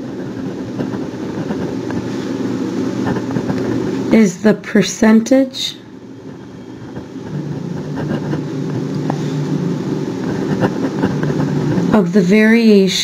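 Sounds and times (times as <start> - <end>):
steady low rumble: 0.0 - 12.8.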